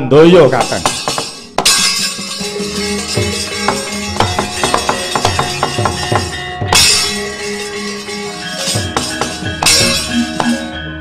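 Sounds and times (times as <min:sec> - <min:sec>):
sharp knocks and metallic clatter: 0:00.5 - 0:10.8
gamelan playing: 0:00.6 - 0:11.0.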